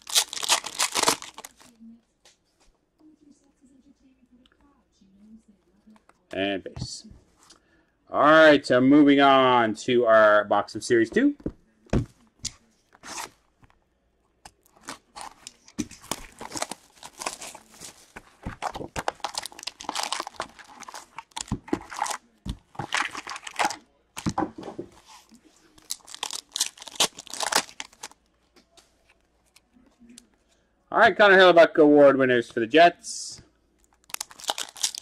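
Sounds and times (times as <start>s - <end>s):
card pack wrappers ripping: 0.0s - 1.7s, 14.7s - 24.3s, 25.8s - 28.2s, 33.9s - 35.0s.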